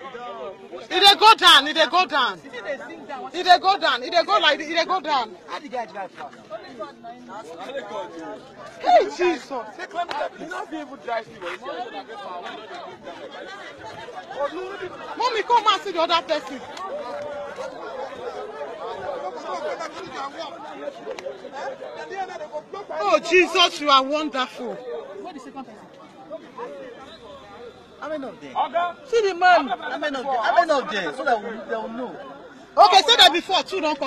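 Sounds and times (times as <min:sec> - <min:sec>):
overlapping chatter: 0:00.0 - 0:34.0
several people talking: 0:00.0 - 0:34.0.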